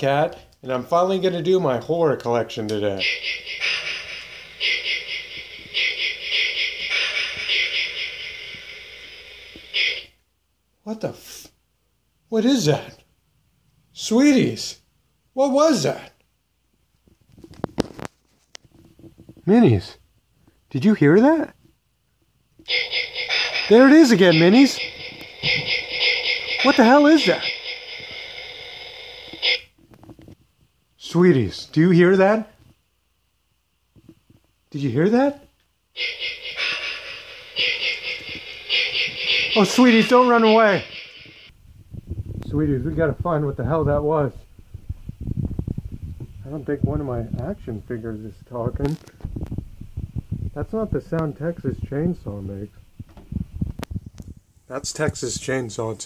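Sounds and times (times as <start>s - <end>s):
high warbling electronic sound: 22.7s - 28.0s, 36.0s - 41.5s.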